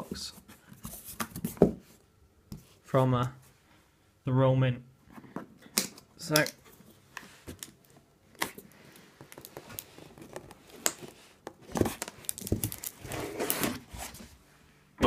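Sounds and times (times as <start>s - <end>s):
cardboard rustling and scraping: 0.2s - 2.0s, 8.5s - 14.5s.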